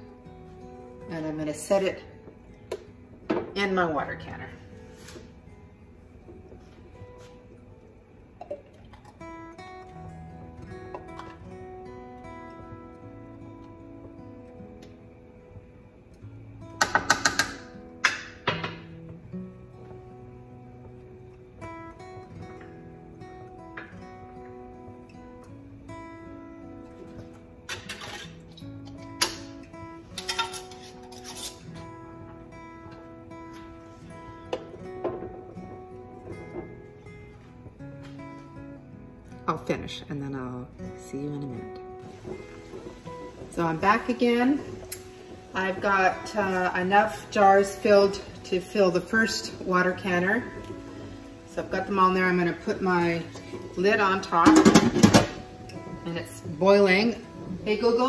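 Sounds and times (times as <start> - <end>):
soft acoustic guitar music: 0.0 - 58.0.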